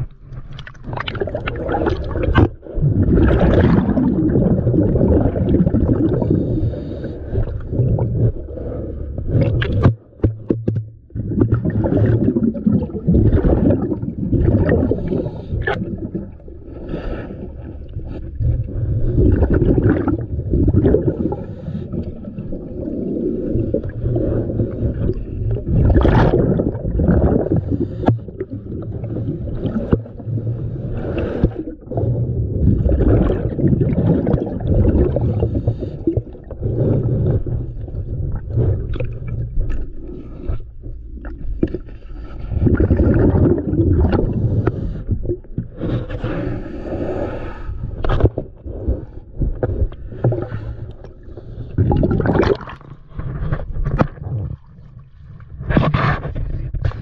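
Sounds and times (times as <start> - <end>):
underwater rumbling and gurgling: 0.0 - 57.0.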